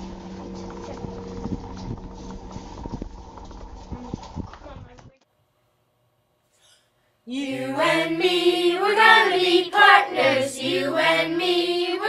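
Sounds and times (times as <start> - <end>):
refrigerator humming: 0.0 - 4.8.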